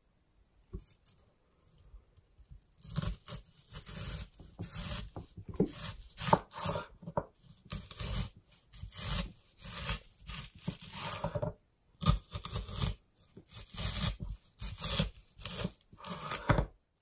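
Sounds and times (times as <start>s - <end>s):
knife slicing onion on board: 2.8s - 16.7s.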